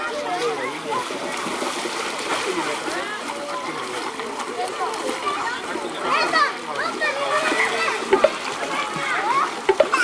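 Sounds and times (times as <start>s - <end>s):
children calling and chattering: 0.0s - 10.0s
water splashing: 0.0s - 10.0s.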